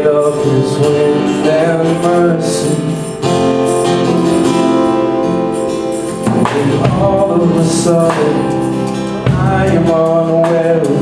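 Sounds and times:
live band music: 0.0 - 11.0
strummed acoustic guitar chords: 0.0 - 11.0.

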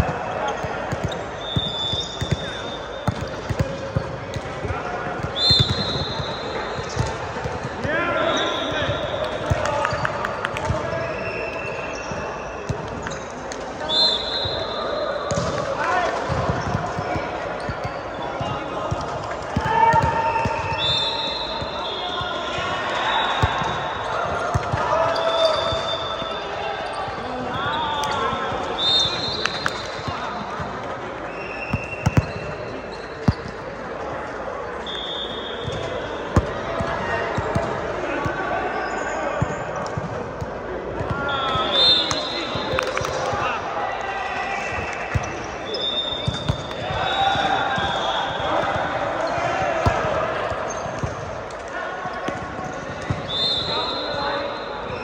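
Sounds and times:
volleyball struck and bouncing: 0.0 - 8.0, 15.3 - 21.0, 46.2 - 51.6
players calling out: 0.0 - 12.6, 40.4 - 55.0.

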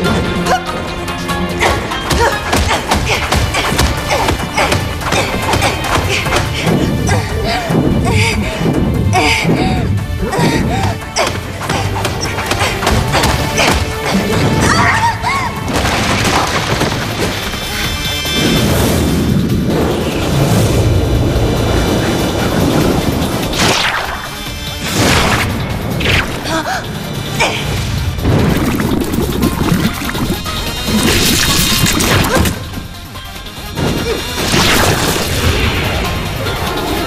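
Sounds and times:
action music: 0.0 - 37.0
breaking rock crash: 15.7 - 17.5.

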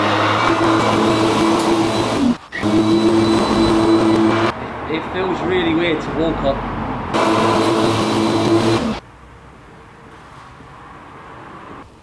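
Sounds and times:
lawnmower cutting grass: 0.0 - 4.5, 7.2 - 9.0.

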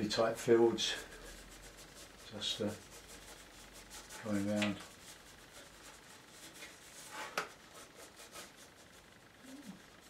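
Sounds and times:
pencil scratching on paper: 0.0 - 10.0.

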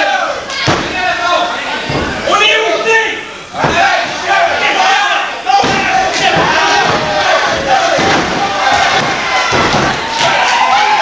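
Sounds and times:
crowd shouting and yelling: 0.0 - 11.0
bodies thudding on ring: 5.6 - 10.7.

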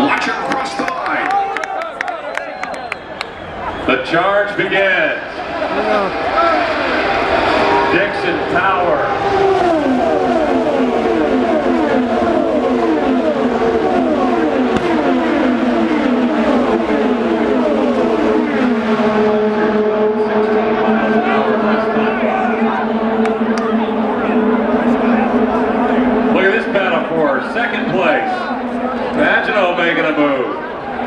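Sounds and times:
race cars passing at speed: 0.0 - 31.0.

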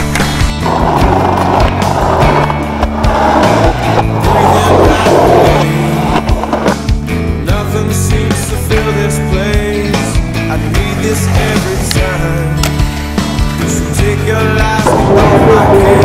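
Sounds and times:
skateboard clacks: 0.0 - 6.9
rock music: 0.0 - 16.0
skateboard wheels rolling on concrete: 0.0 - 16.0.

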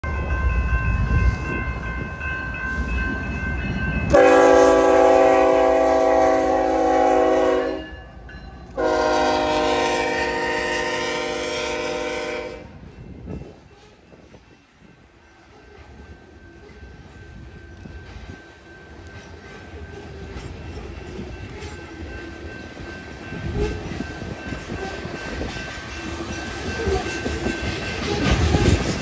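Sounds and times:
train rumble: 0.0 - 29.0
locomotive air horn blasts: 4.1 - 8.0, 8.8 - 12.8.

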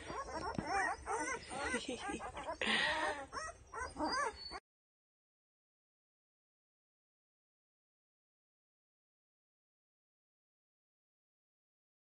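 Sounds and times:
puppies whimpering and squealing: 0.0 - 4.6.

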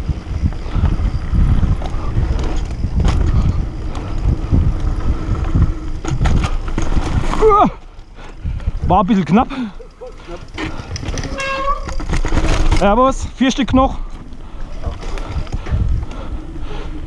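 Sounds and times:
bike tyres rumbling on rough ground: 0.0 - 17.0
wind noise: 0.0 - 17.0
bike knocks and rattles: 0.1 - 16.1.

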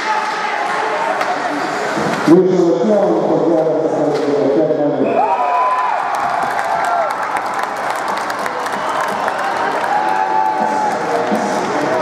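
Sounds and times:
crowd cheering and clapping: 5.1 - 12.0.

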